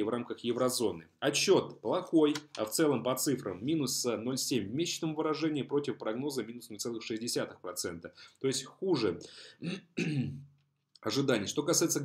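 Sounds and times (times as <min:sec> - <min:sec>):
man speaking: 0:00.0 - 0:10.4, 0:11.0 - 0:12.0.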